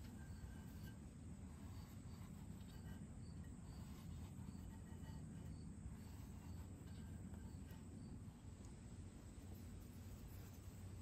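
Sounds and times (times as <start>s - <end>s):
crickets chirping: 0.0s - 11.0s
low steady rumble: 0.0s - 11.0s.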